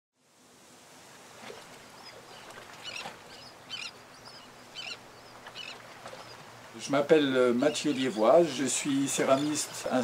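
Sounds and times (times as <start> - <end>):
steady background hiss: 0.2 - 10.0
birds chirping: 1.8 - 10.0.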